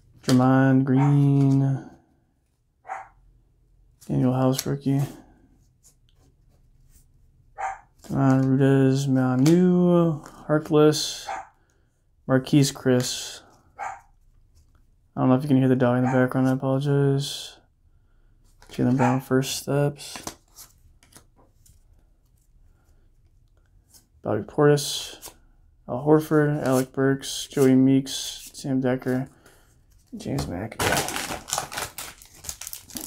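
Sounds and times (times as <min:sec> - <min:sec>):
cardboard cards rustling: 0:00.1 - 0:01.8, 0:07.8 - 0:11.0, 0:18.4 - 0:24.1, 0:26.2 - 0:33.0.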